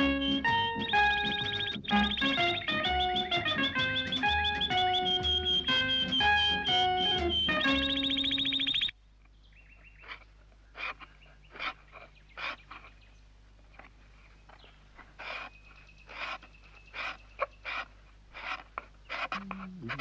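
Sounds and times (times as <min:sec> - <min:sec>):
faint bird chirps: 0:00.0 - 0:20.0.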